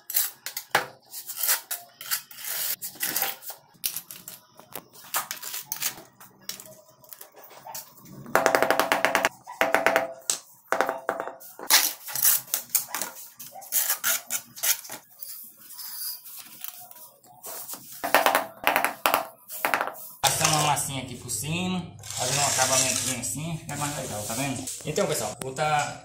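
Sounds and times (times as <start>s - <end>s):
trowel scraping and clicking on tiles: 0.0s - 4.4s.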